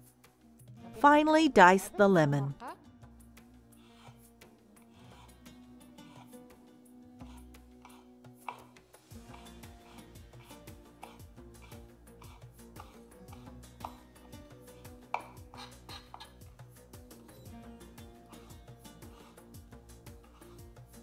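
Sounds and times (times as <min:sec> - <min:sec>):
soft background music: 0:00.0 - 0:21.0
knife tapping on cutting board: 0:15.1 - 0:16.3.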